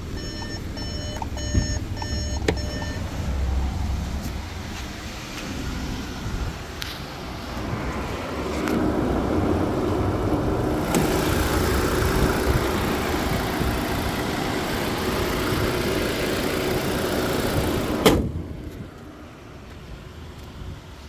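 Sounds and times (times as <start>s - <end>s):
car engine idling: 0.0s - 7.7s, 8.8s - 19.5s
thump: 18.0s - 18.4s.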